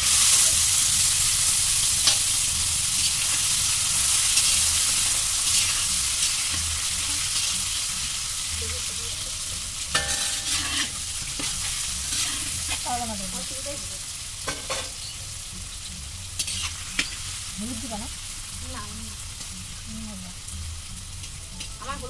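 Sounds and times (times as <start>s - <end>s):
food sizzling in pan: 0.0s - 22.0s
metal ladle scraping pan: 9.9s - 12.9s, 16.4s - 17.2s.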